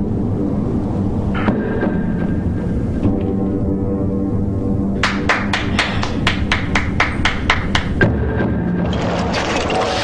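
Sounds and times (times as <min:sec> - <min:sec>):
low musical drone: 0:00.0 - 0:10.0.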